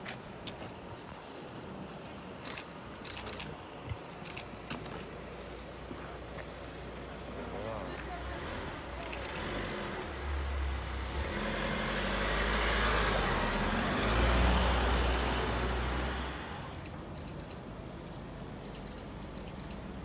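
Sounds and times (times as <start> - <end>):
van engine and tyres passing: 0.0 - 20.0.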